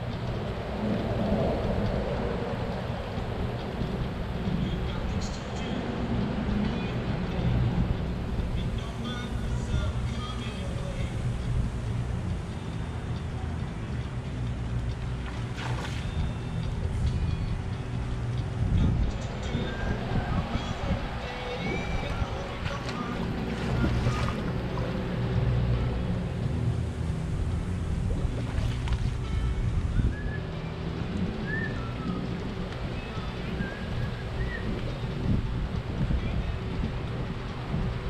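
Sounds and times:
swimming pool water noise: 0.0 - 18.4, 19.2 - 29.9
wind on microphone: 0.0 - 38.0.

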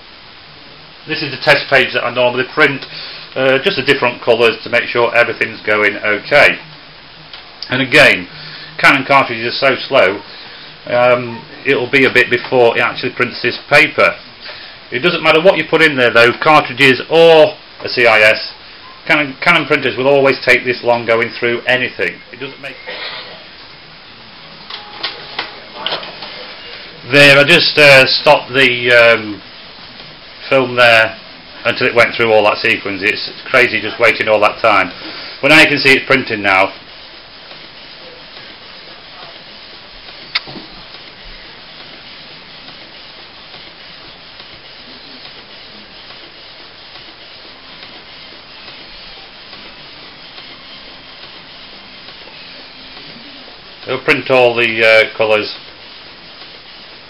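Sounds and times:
inkjet printer running: 3.5 - 57.0
sharp click: 40.3 - 40.6.

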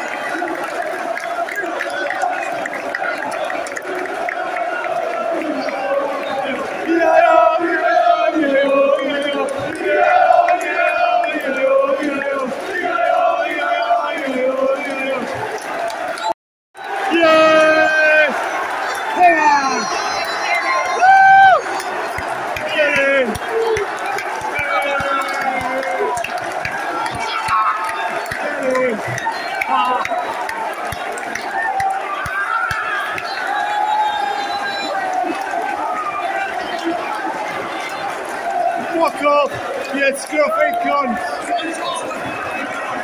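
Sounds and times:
crowd noise in packed stand: 0.0 - 43.0
men shouting in celebration: 0.1 - 16.1, 16.8 - 43.0.

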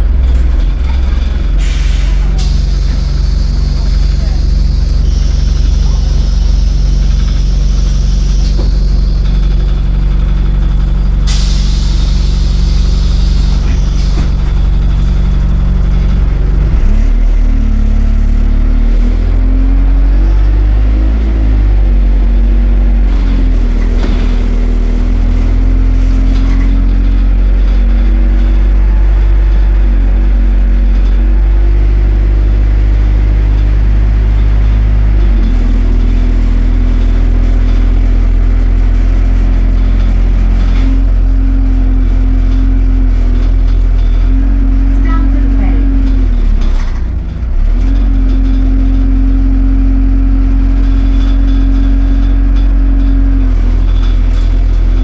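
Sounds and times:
bus diesel engine from inside: 0.0 - 55.0.

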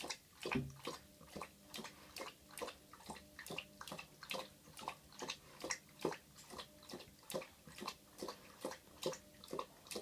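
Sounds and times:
dog lapping water: 0.0 - 10.0.

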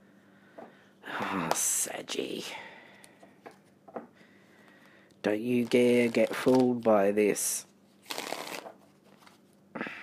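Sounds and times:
cards being shuffled: 5.4 - 7.2, 8.0 - 9.5.

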